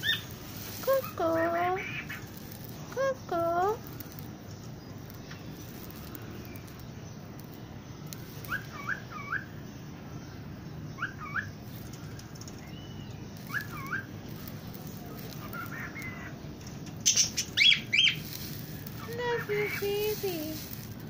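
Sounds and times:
parakeets chirping: 0:00.0 - 0:20.8.

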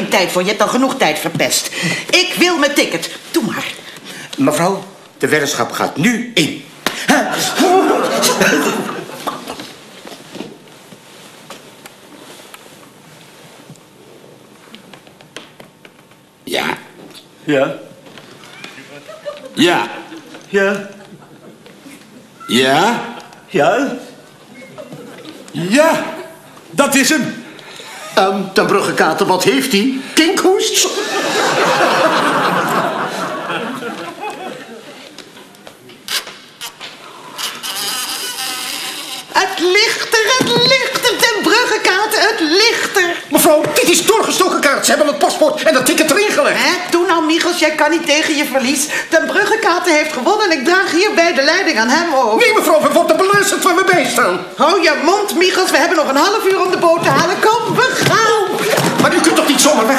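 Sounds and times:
people laughing: 0:07.1 - 0:09.6, 0:18.6 - 0:22.3, 0:24.5 - 0:25.5, 0:30.9 - 0:35.2, 0:58.5 - 0:59.9
faint clicks and taps: 0:14.7 - 0:16.3.

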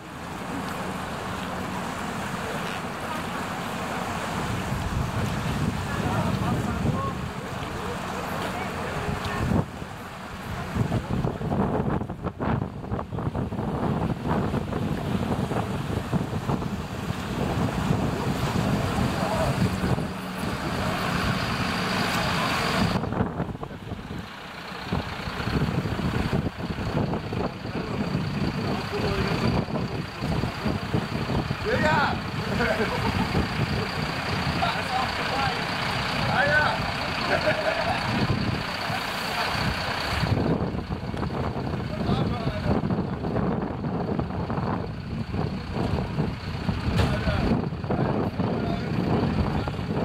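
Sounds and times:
fire engine running: 0:00.0 - 0:50.0
wind on microphone: 0:04.2 - 0:07.9, 0:08.9 - 0:24.2, 0:24.9 - 0:34.8, 0:37.4 - 0:50.0.

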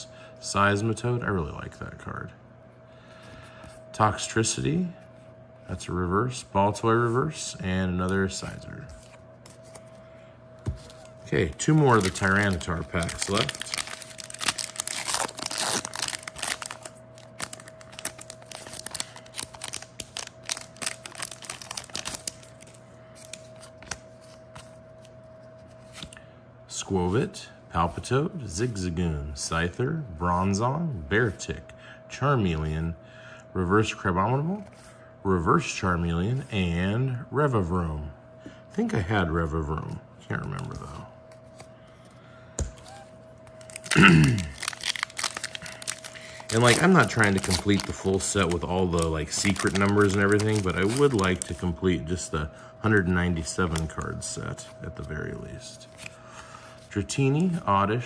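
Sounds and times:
trading cards handled: 0:08.1 - 0:26.2, 0:40.6 - 0:51.7
foil wrapper crinkling: 0:10.8 - 0:24.1, 0:42.9 - 0:51.9
foil wrapper tearing: 0:11.5 - 0:24.0, 0:43.6 - 0:51.6
person's short vocal sound: 0:43.9 - 0:44.6.

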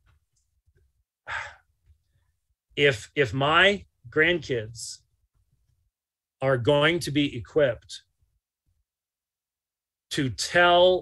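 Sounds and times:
man sighing: 0:01.3 - 0:01.7.

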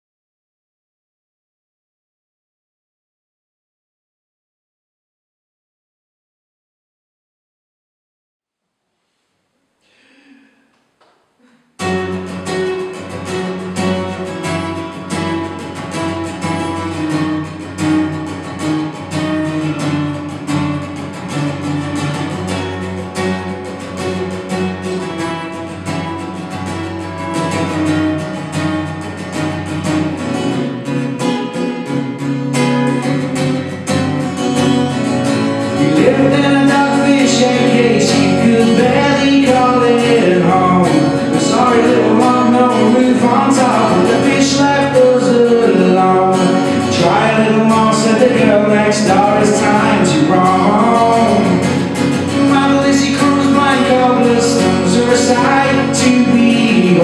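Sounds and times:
acoustic guitar strumming: 0:09.8 - 0:57.0
man singing: 0:35.6 - 0:57.0.

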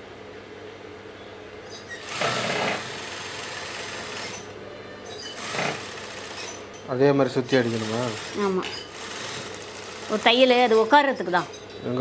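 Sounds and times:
steady machine hum: 0:00.0 - 0:12.0
sewing machine stitching: 0:02.0 - 0:04.5, 0:05.4 - 0:06.6, 0:07.5 - 0:10.9.

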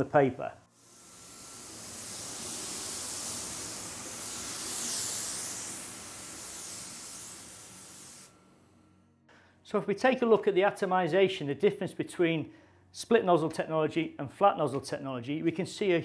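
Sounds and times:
spray gun hissing: 0:00.7 - 0:08.6.

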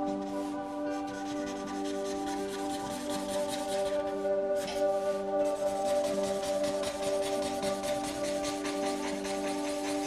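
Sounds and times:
marker scrubbing on paper: 0:00.0 - 0:10.0
soft background music: 0:00.0 - 0:10.0.

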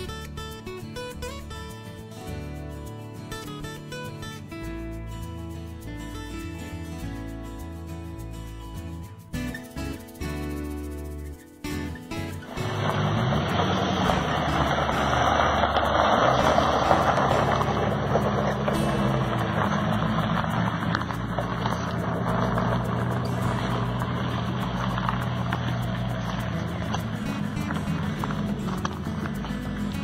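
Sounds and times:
background music: 0:00.0 - 0:30.0
car engine pulling away: 0:09.5 - 0:30.0
tyres on gravel: 0:12.1 - 0:30.0.

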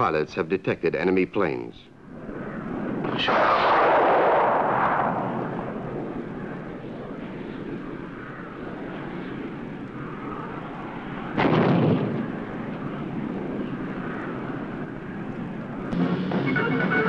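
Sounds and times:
fighter aircraft engine: 0:01.5 - 0:17.0
loud burst: 0:03.0 - 0:06.7, 0:11.3 - 0:12.5, 0:15.9 - 0:17.0.

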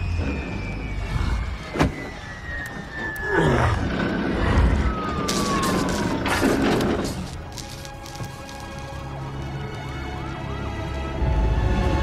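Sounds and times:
distant siren wailing: 0:00.0 - 0:11.4
film score: 0:00.0 - 0:12.0.

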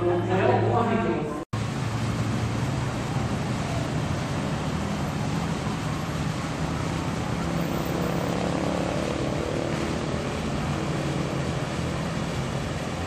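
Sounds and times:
cars driving past: 0:01.6 - 0:13.0.

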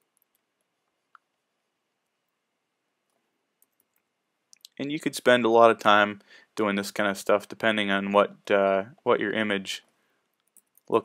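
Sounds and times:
man speaking: 0:04.6 - 0:09.9.

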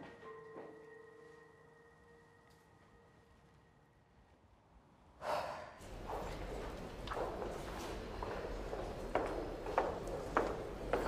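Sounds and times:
footsteps: 0:05.8 - 0:11.0.

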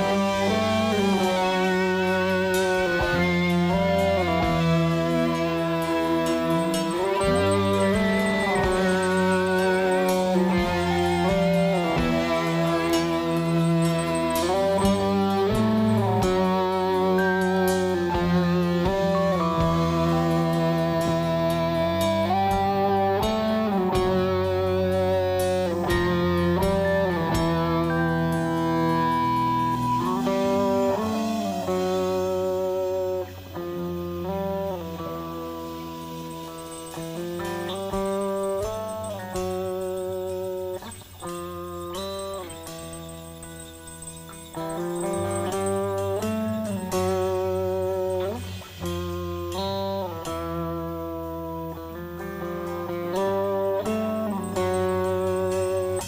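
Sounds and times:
bass guitar: 0:00.0 - 0:56.0
drums: 0:00.0 - 0:56.0
electric guitar lead lines: 0:00.0 - 0:56.0.

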